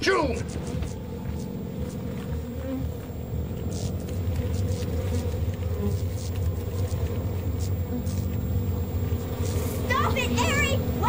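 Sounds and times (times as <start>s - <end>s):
faint ticks: 0.0s - 10.2s
low rumbling drone with buzz: 0.0s - 11.0s.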